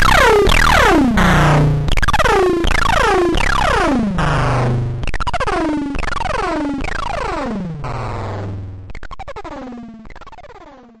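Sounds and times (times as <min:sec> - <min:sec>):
pulsing synthesizer techno: 0:00.0 - 0:11.0.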